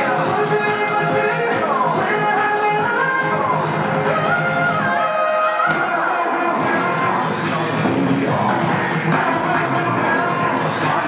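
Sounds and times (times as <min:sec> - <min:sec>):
upbeat pop dance track: 0:00.0 - 0:11.0.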